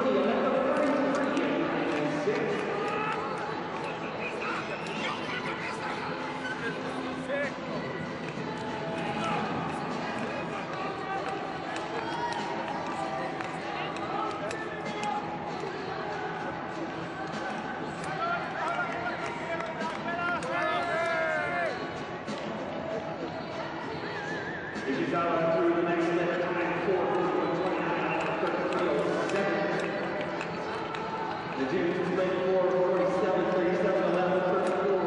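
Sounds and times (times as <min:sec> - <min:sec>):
crowd talking and calling: 0:00.0 - 0:35.0.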